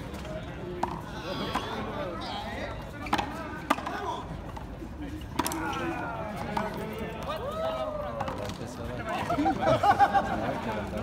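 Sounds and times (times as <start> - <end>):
ball smacking hard surfaces: 5.3 - 5.6.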